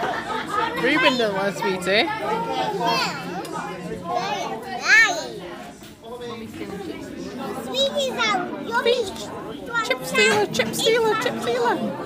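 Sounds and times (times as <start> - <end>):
children's voices in room: 0.0 - 12.0.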